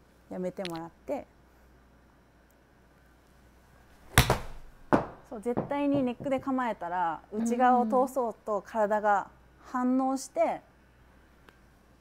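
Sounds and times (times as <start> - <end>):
golf club swish: 4.0 - 4.8
golf club hitting ball: 4.0 - 5.8
sharp thump: 4.1 - 5.8.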